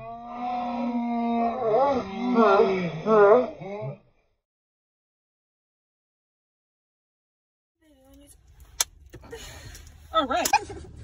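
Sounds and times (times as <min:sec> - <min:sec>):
car engine rumble in cabin: 0:07.9 - 0:11.0.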